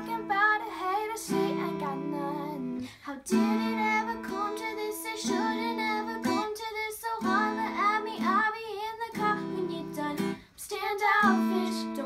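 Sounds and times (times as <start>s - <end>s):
strummed classical guitar: 0.0s - 6.6s
girls singing pop song: 0.0s - 12.0s.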